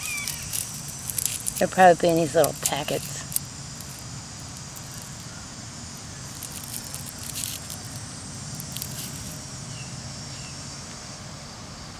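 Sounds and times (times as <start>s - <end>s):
dry seed heads crackling: 0.0s - 9.5s
high insect chorus: 0.0s - 11.9s.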